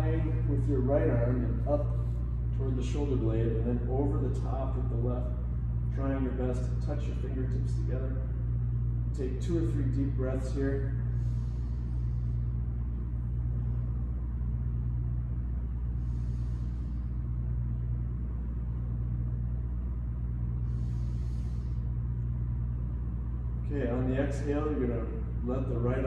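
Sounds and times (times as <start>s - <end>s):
slow deep breaths: 0.0s - 3.9s, 4.7s - 23.6s
ventilation rumble: 0.0s - 26.0s.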